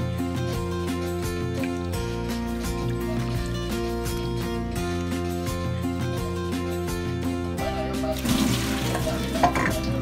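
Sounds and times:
background music: 0:00.0 - 0:10.0
water splashing into colander: 0:00.3 - 0:05.2, 0:08.1 - 0:10.0.

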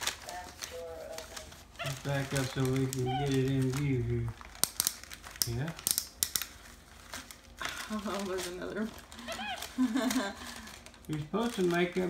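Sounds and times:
wrapping paper crinkling: 0:00.0 - 0:12.0.

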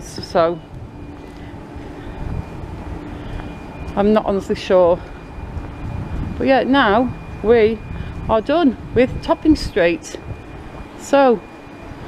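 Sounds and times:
distant traffic: 0:00.0 - 0:12.0
faint steady hum: 0:00.0 - 0:12.0
wind rumble on microphone: 0:00.0 - 0:12.0.

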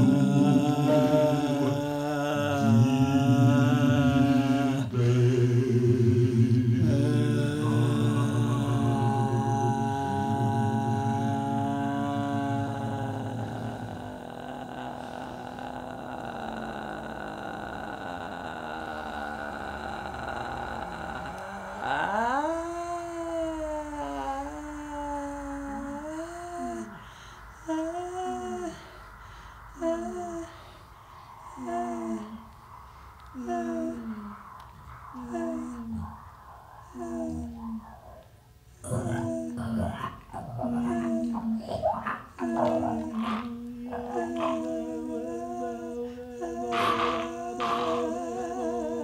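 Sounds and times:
held sung low notes: 0:00.0 - 0:49.0
overlapping hummed voices: 0:00.0 - 0:49.0
rough animal-like vocal sounds: 0:00.0 - 0:49.0.

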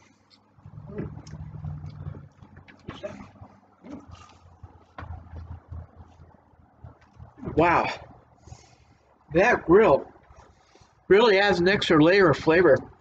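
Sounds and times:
chewing and mouth noises: 0:00.6 - 0:08.5
low rumbles: 0:00.6 - 0:13.0.

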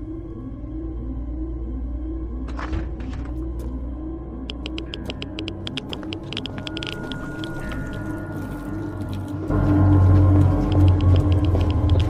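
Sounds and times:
ominous ambient music: 0:00.0 - 0:12.0
sharp clicks: 0:04.5 - 0:07.8.

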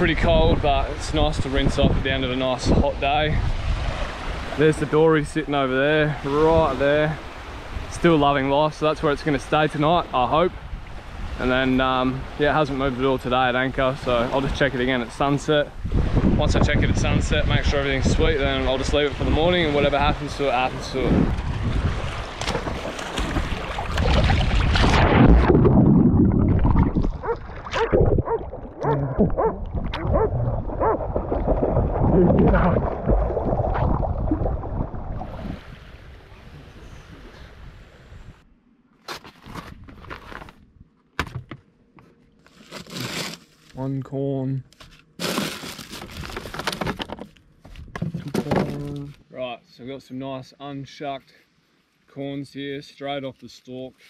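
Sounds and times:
wind on microphone: 0:00.0 - 0:04.6, 0:15.7 - 0:38.4
plastic bags crinkling: 0:45.2 - 0:47.0.

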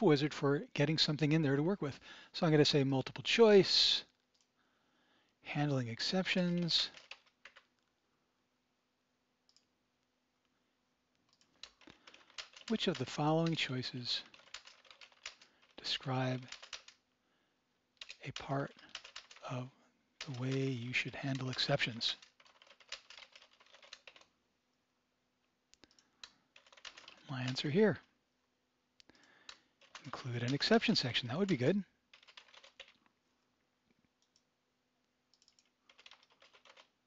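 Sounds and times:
faint keyboard keystrokes: 0:06.5 - 0:07.9, 0:11.2 - 0:13.6, 0:14.2 - 0:15.8, 0:16.4 - 0:17.0, 0:18.0 - 0:19.4, 0:21.3 - 0:24.3, 0:25.8 - 0:27.2, 0:29.1 - 0:30.8, 0:31.4 - 0:33.1, 0:35.3 - 0:36.9.

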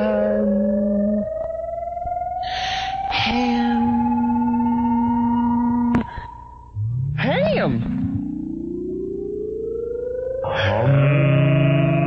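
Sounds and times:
fainter higher rising tone: 0:00.0 - 0:12.0
electronic tone gliding upward: 0:00.7 - 0:12.0.

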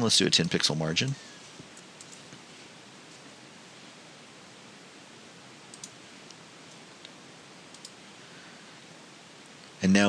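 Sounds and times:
microphone hiss: 0:00.0 - 0:10.0
computer mouse clicks: 0:00.4 - 0:02.4, 0:05.7 - 0:08.0.

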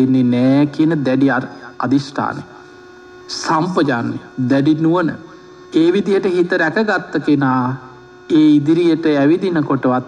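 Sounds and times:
man preaching: 0:00.0 - 0:02.6, 0:03.3 - 0:10.0
faint steady hum: 0:00.0 - 0:10.0.

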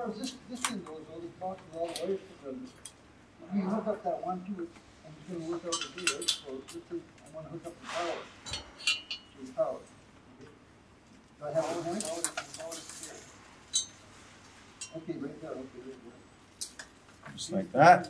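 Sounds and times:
metal clinks and taps: 0:05.5 - 0:07.3, 0:08.4 - 0:09.4, 0:13.7 - 0:14.0, 0:14.8 - 0:15.1.

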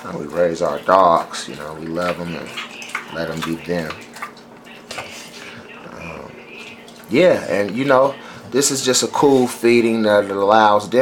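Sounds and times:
dog chewing meat: 0:00.0 - 0:08.6.

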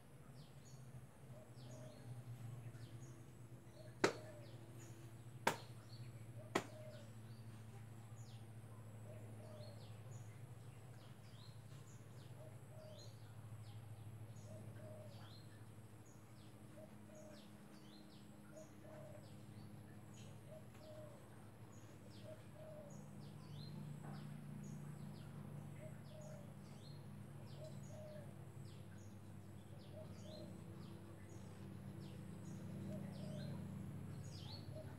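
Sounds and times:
steady low hum: 0:00.0 - 0:34.9
birds chirping: 0:00.2 - 0:34.9.

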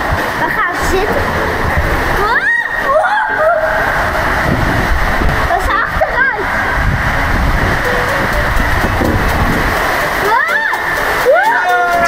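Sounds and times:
water rushing through slide tube: 0:00.0 - 0:12.0.

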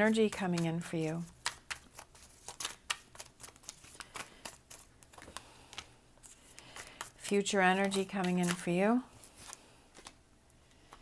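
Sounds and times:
cards being shuffled: 0:00.0 - 0:10.2.

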